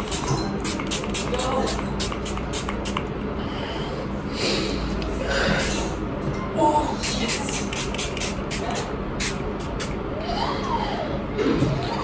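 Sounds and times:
spray bottle spritzing: 0.0s - 3.0s, 7.0s - 10.0s.

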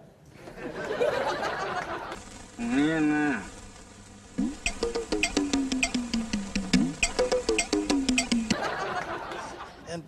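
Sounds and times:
rhythmic music with clicking percussion: 4.4s - 9.1s.

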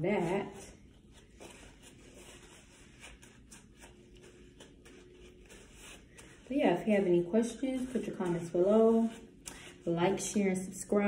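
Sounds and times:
paper towel rubbing gloved hands: 0.0s - 10.3s.

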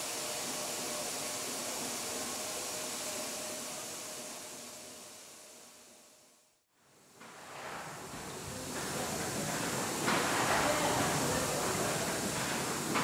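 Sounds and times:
steam engine hissing and running: 0.0s - 6.2s, 7.0s - 13.0s.

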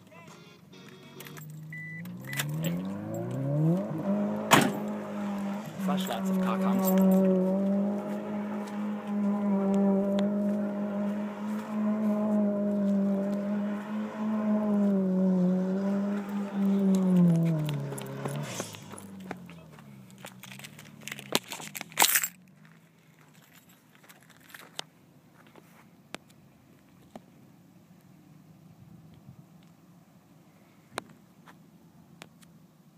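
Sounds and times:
car engine at high revs: 1.3s - 21.9s.

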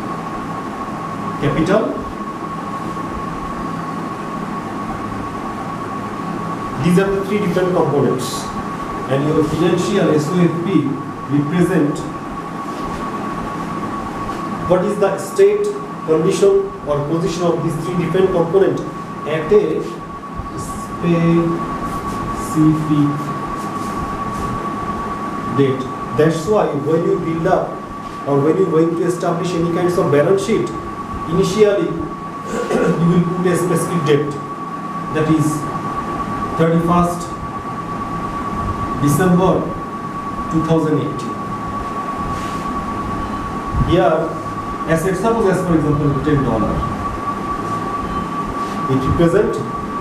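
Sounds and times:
constant high-pitched hum: 0.0s - 50.0s
high-pitched whine: 0.0s - 50.0s
low room rumble: 0.0s - 50.0s.

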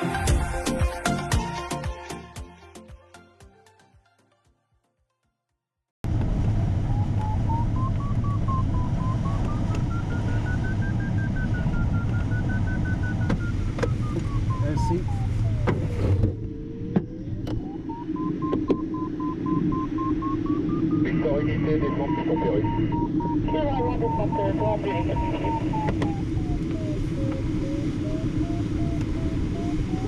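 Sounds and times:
cockpit airflow noise: 6.0s - 30.0s
variometer tone changing pitch: 6.3s - 30.0s.

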